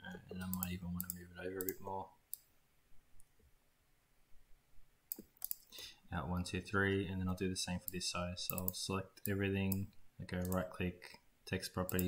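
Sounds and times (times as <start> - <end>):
computer mouse clicks: 0.5 - 2.5, 5.1 - 5.7, 7.8 - 10.6.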